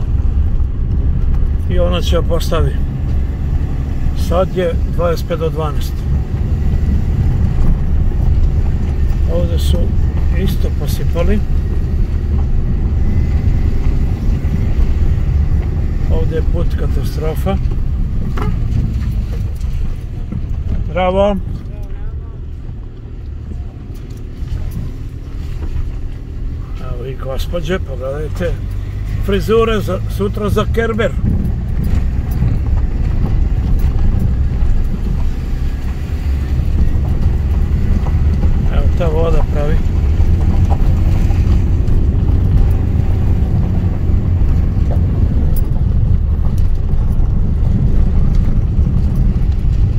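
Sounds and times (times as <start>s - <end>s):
car engine and tyres rumbling: 0.0s - 49.9s.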